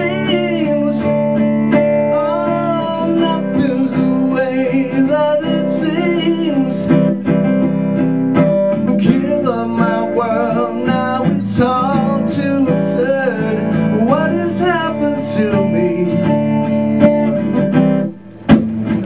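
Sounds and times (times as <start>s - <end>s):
person singing: 0.0s - 1.3s, 2.0s - 7.1s, 8.9s - 16.8s
guitar strummed: 0.0s - 19.0s.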